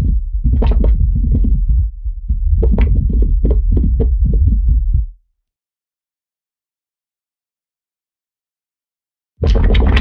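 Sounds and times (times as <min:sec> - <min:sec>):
deep rumble with crackling pulses: 0:00.0 - 0:05.2, 0:09.4 - 0:10.0.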